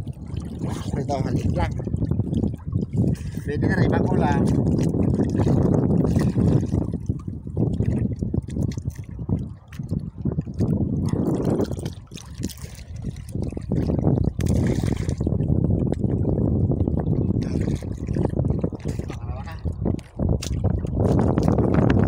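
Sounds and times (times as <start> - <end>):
sea water sloshing and splashing: 0.0 - 22.0.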